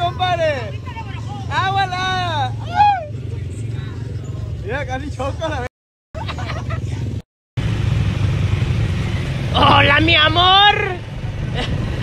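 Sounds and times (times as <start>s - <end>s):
vehicle engine running: 0.0s - 12.0s.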